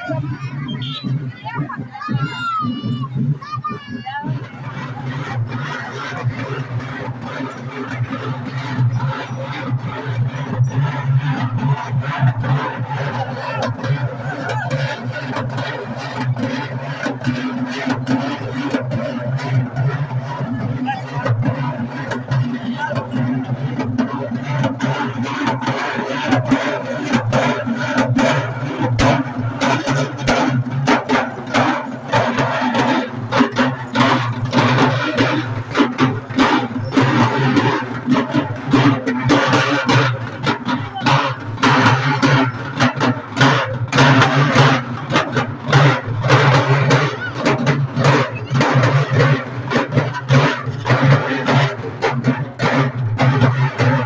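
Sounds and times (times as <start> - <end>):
hand drums beaten fast: 0.0 - 54.0.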